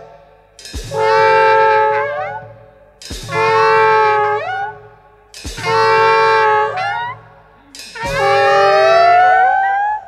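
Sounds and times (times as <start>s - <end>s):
free jazz wind instruments: 0.8s - 10.0s.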